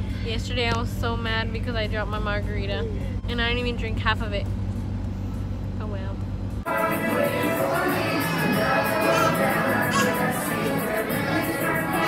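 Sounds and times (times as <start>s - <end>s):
music: 6.6s - 12.0s.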